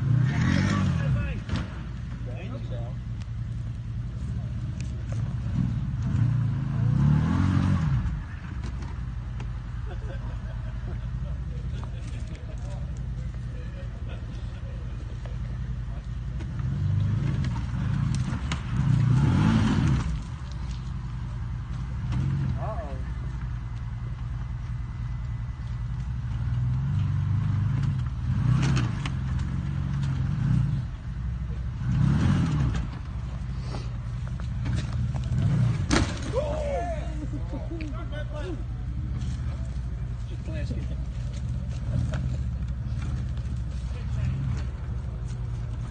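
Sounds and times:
off-road vehicle engine revving: 0:00.0 - 0:45.9.

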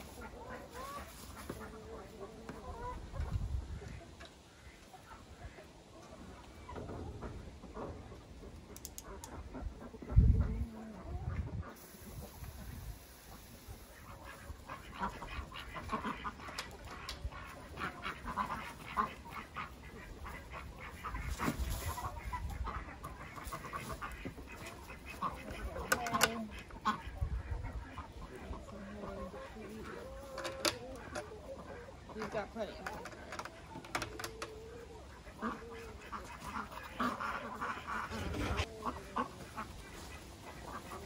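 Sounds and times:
poultry clucking and squawking: 0:00.0 - 0:41.0.

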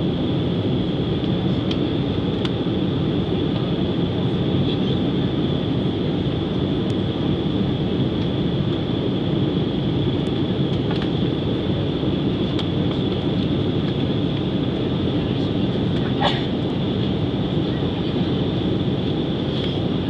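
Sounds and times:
airliner engines and airflow rumble: 0:00.0 - 0:20.0
high steady whine: 0:00.0 - 0:20.0.

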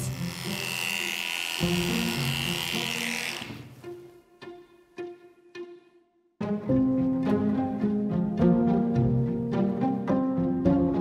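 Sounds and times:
electric clippers whining: 0:00.0 - 0:03.8.

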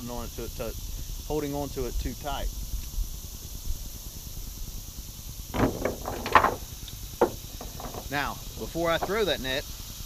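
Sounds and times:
sharp knock: 0:05.6 - 0:06.6.

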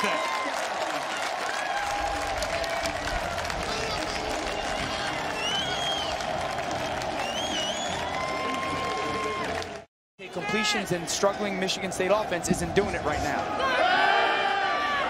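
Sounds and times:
crowd cheering and applause: 0:00.0 - 0:15.0
high wavering cheers or whistles: 0:04.5 - 0:09.7.

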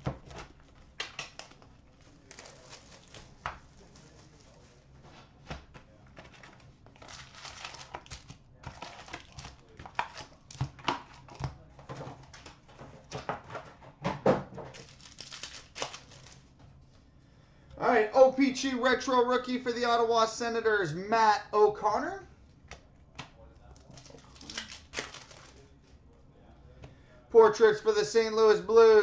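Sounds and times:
cardboard tearing and rustling: 0:00.0 - 0:04.8, 0:06.2 - 0:11.4, 0:14.7 - 0:16.4, 0:23.9 - 0:25.6
card packs crinkling: 0:00.0 - 0:13.1, 0:14.7 - 0:16.6, 0:23.6 - 0:25.8.

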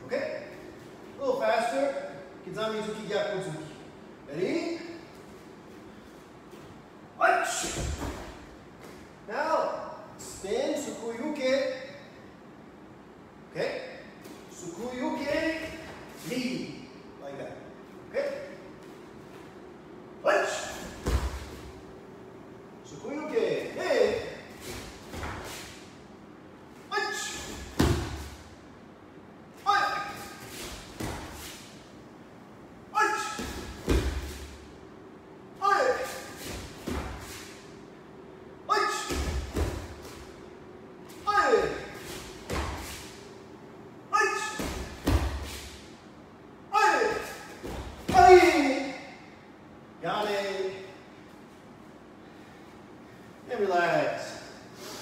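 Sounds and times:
person shouting: 0:26.9 - 0:28.2, 0:29.6 - 0:30.4, 0:32.9 - 0:33.8, 0:35.6 - 0:36.4, 0:38.7 - 0:39.3, 0:41.2 - 0:42.0, 0:44.1 - 0:44.7, 0:46.7 - 0:47.5, 0:48.1 - 0:49.2
bare feet stamping on mats: 0:33.4 - 0:34.6, 0:36.4 - 0:37.4, 0:39.1 - 0:40.3.

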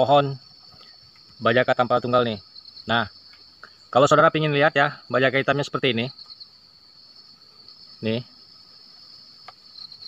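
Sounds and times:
forest insects droning: 0:00.0 - 0:10.0.

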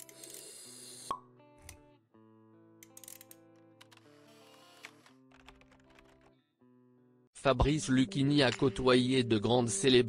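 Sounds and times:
soft music with held notes: 0:00.0 - 0:10.0.

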